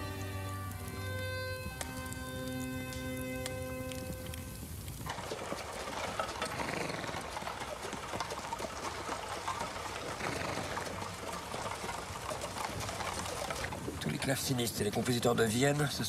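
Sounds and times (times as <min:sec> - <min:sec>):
carriage wheels rattling: 0:04.2 - 0:16.0.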